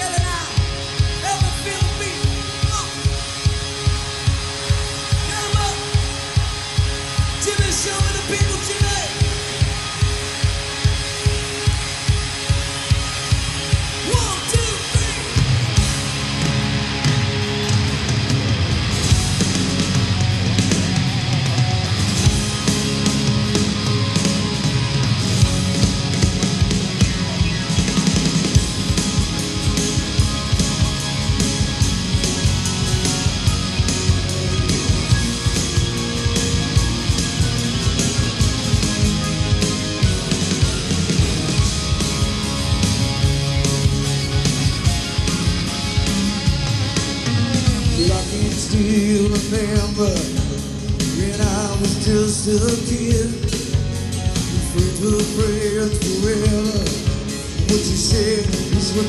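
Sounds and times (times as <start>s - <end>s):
bass guitar: 0.0s - 59.0s
drum kit beat: 0.0s - 59.0s
electric guitar: 0.0s - 59.0s
live rock band playing: 0.0s - 59.0s.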